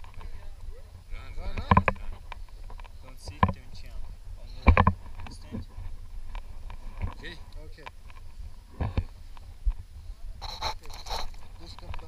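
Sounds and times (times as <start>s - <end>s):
wind rumbling on microphone: 0.0s - 12.0s
knocks and rustles: 1.4s - 9.8s.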